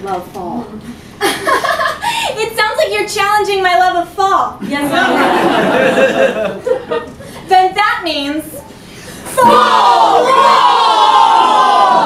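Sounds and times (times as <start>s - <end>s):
women yelling together: 9.3s - 12.0s.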